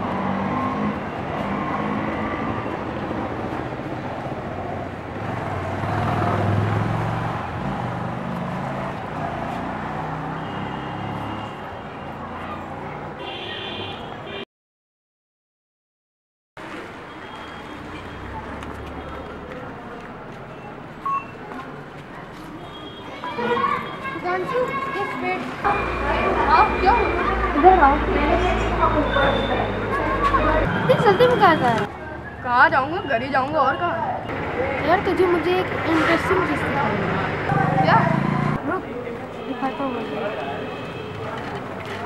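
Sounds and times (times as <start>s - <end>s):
vehicle passing: 0.0s - 11.5s, 23.5s - 32.2s, 34.0s - 42.0s
traffic hum: 0.0s - 14.4s, 16.6s - 42.0s
indistinct voices: 19.4s - 42.0s
short sharp beep: 21.0s - 21.4s.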